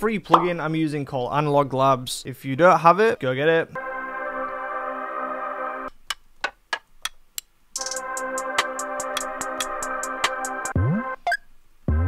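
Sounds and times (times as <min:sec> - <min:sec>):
crisp hi-hat ticks: 0:07.0 - 0:09.8.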